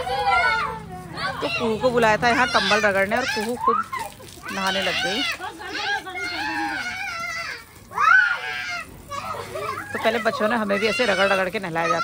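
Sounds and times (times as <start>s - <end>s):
child's shrill squeal: 2.6s - 10.0s.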